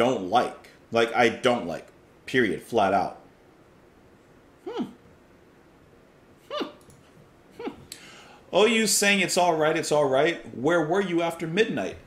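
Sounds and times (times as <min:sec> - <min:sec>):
man saying hmm: 0:04.6 - 0:05.0
faint clicks: 0:06.8 - 0:07.1.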